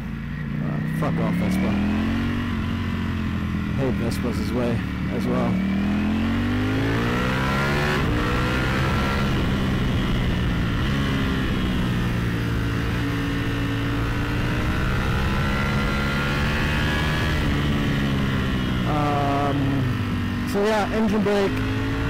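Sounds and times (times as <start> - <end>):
motorcycle engine revving: 0.0 - 22.0.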